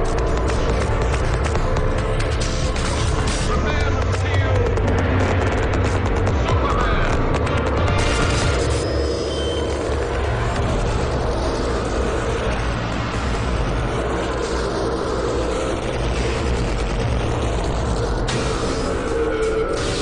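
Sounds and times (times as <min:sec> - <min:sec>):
dense low noise: 0:00.0 - 0:20.0
music: 0:00.0 - 0:20.0.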